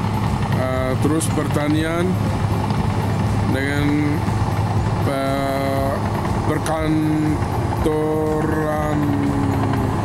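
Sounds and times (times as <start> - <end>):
distant bulldozer engine rumble: 0.0 - 10.0.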